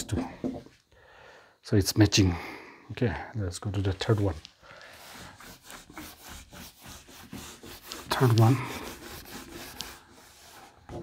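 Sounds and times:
eraser rubbing on whiteboard: 4.9 - 11.0.

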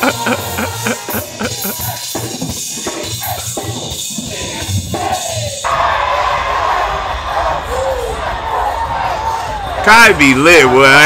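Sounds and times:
music with drum beat: 0.0 - 5.6
arena crowd cheering and shouting: 0.0 - 11.0.

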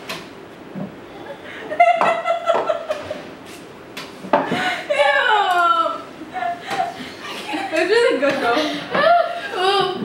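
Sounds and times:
women laughing: 1.3 - 3.3, 6.2 - 10.0.

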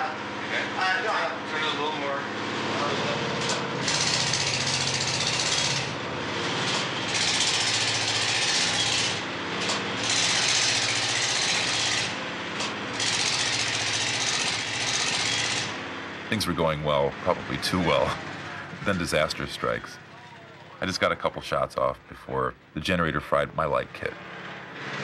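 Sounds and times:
diesel generator running: 0.0 - 25.0.

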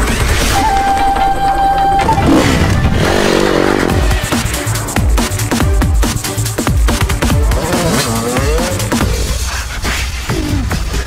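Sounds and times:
electronic dance music: 0.0 - 10.9
held high note: 0.4 - 4.2.

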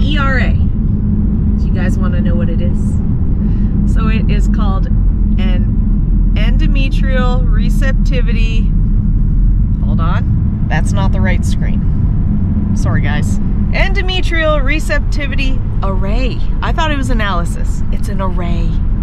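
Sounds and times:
woman talking: 0.0 - 0.6, 1.6 - 3.0, 3.9 - 5.7, 6.4 - 8.7, 13.7 - 18.8
car cabin road rumble: 0.0 - 19.0.

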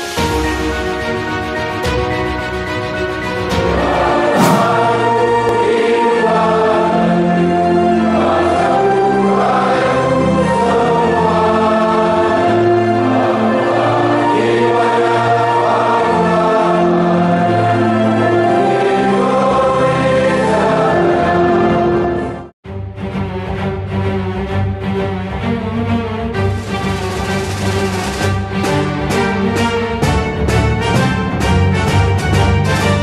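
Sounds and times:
choir singing slow song: 3.6 - 22.4.

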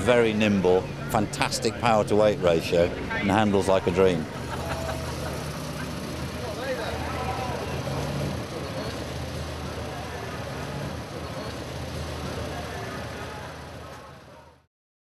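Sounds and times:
faint voices: 0.0 - 14.7
car engine running low: 3.8 - 14.6.

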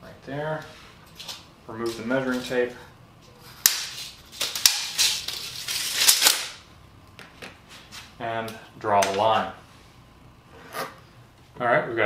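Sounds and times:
tape measure clicks and snaps: 3.6 - 6.6.

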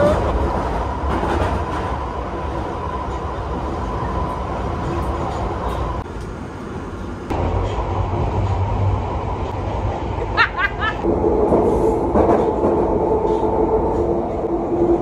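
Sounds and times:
train rumble and rattle: 0.0 - 15.0
train whine: 0.0 - 15.0.

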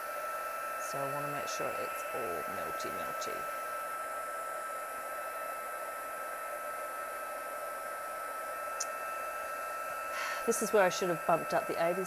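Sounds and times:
heat tool blowing hot air: 0.0 - 4.0, 6.7 - 12.0
fan whine: 0.0 - 12.0.

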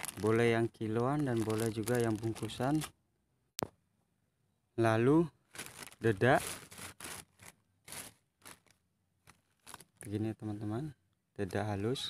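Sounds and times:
plastic sack rustling: 0.0 - 2.9, 5.4 - 10.2.

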